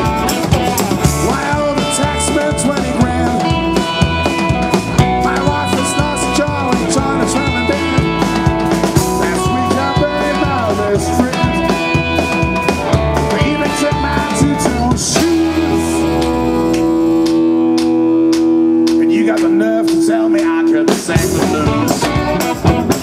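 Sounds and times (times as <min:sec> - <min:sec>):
blues band playing: 0:00.0 - 0:23.0
drum and cymbal hits: 0:00.0 - 0:23.0
electric guitar lead: 0:00.0 - 0:23.0.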